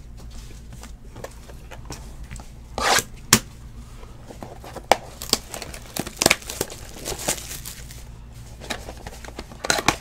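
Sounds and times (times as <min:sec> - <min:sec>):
card pack wrapper crinkling and tearing: 0:04.7 - 0:08.0.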